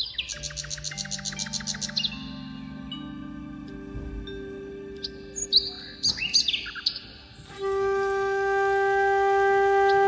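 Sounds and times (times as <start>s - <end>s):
bird chirps: 0.0s - 3.0s, 3.7s - 9.0s
soft music of long held notes: 0.0s - 10.0s
flute-like held chord: 7.4s - 10.0s.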